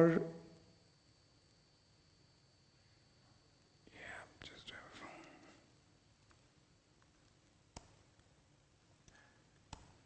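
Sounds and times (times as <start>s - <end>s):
whispered speech: 3.9s - 5.6s.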